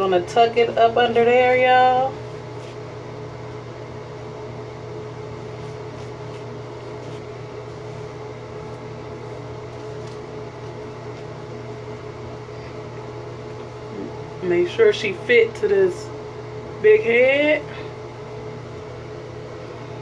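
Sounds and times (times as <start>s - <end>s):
ventilation fan humming: 0.0s - 20.0s.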